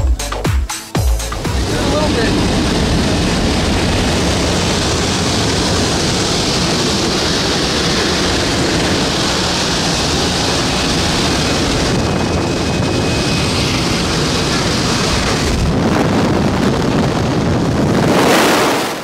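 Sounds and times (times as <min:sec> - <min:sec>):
airplane engine running: 0:00.0 - 0:19.0
wind rushing: 0:01.3 - 0:19.0.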